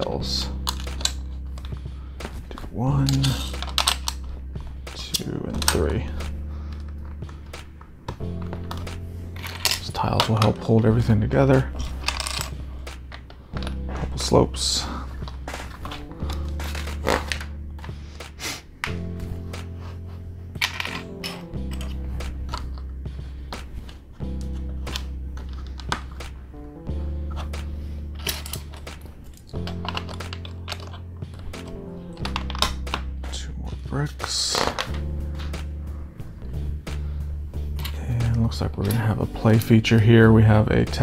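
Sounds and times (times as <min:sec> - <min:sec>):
music of low sustained chords: 0:00.0 - 0:41.0
plastic bricks clicking: 0:20.6 - 0:22.8, 0:28.2 - 0:33.1.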